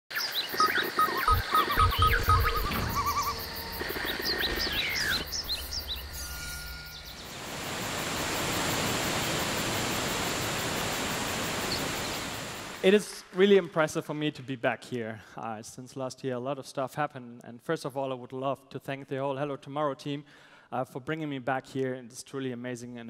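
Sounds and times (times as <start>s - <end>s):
birds chirping: 0.1s - 7.5s
insect calls: 0.1s - 12.9s
deep thumps: 1.3s - 6.8s
waterfall rushing: 4.6s - 12.8s.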